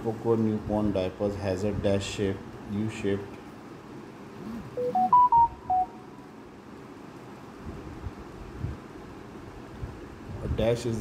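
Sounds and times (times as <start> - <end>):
electronic jingle beeps: 4.5 - 6.0.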